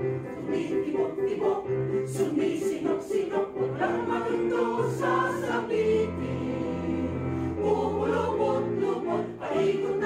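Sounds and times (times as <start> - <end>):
mixed choir singing: 0.0 - 10.0.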